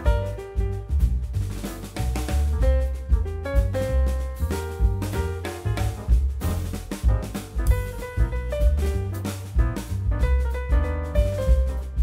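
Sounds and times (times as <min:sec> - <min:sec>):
instrumental music with drums: 0:00.0 - 0:12.0.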